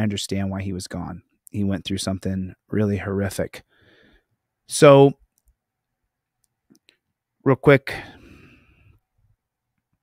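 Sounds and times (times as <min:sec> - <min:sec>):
man speaking: 0:00.0 - 0:03.6, 0:04.7 - 0:05.2, 0:07.4 - 0:08.2
faint small clicks: 0:05.3 - 0:05.6, 0:06.4 - 0:07.1.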